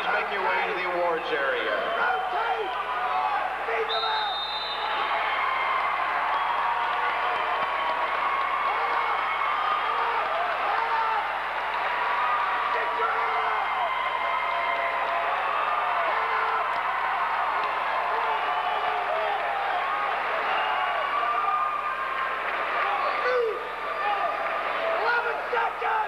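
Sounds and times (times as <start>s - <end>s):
crowd shouting and talking: 0.0s - 26.0s.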